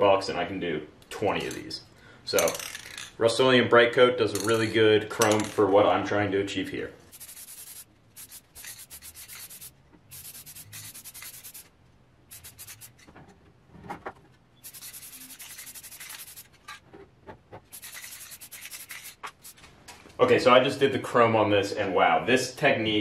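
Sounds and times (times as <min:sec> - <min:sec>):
aerosol spray hissing: 0:07.1 - 0:11.7, 0:12.3 - 0:12.9, 0:14.6 - 0:16.5, 0:17.7 - 0:19.6.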